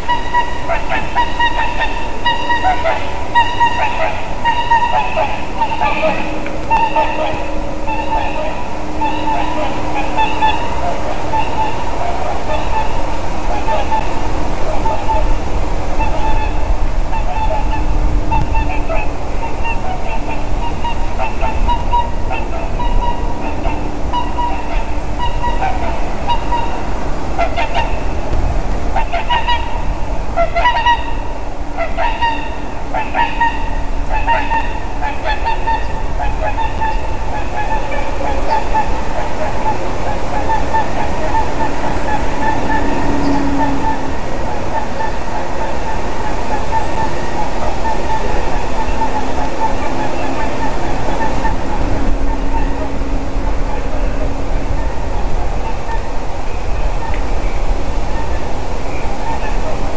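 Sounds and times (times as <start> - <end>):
swans honking: 0.0 - 59.9
wind rumble on microphone: 0.0 - 59.9.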